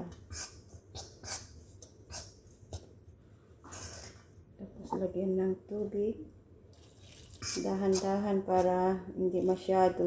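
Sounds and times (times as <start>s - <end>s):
batter mixed in steel bowl: 0.0s - 3.1s, 6.7s - 10.0s.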